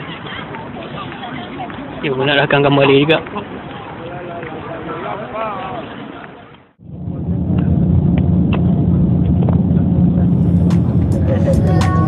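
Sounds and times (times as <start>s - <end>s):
engine and road rumble: 6.7s - 12.0s.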